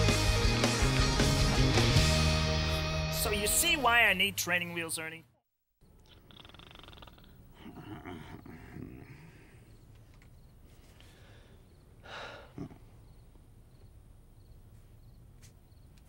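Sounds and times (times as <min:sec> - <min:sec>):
person snoring: 0:06.1 - 0:09.7.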